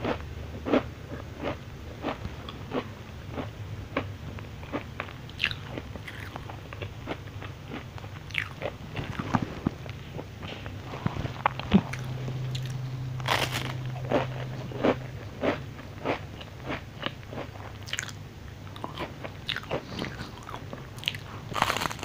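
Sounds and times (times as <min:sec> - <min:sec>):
chewing: 0:00.0 - 0:22.0
crisp wafer cookie crunching: 0:00.0 - 0:22.0.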